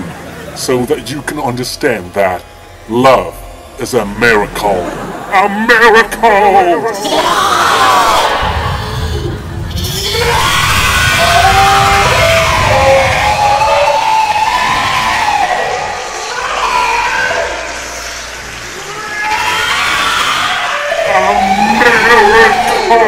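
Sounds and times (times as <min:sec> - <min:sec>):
men screaming and laughing: 0:03.5 - 0:23.0.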